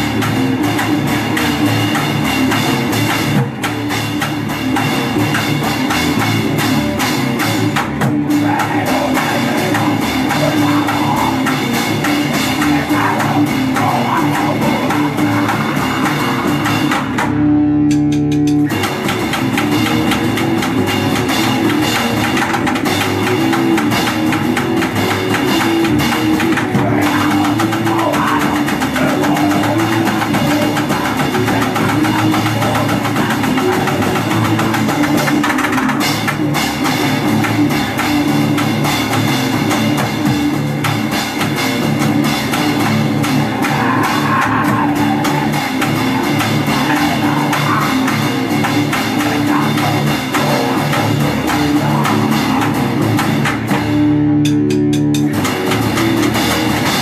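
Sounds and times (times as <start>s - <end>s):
bass guitar: 0.0s - 57.0s
distorted electric guitar: 0.0s - 57.0s
drum kit with cymbals: 0.0s - 57.0s.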